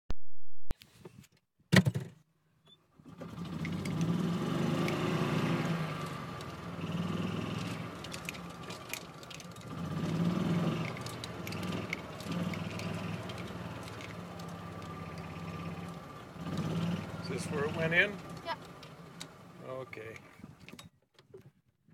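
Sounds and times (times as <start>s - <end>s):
golf cart driving hum: 2.9s - 20.8s
clicks and rattles: 7.6s - 16.0s.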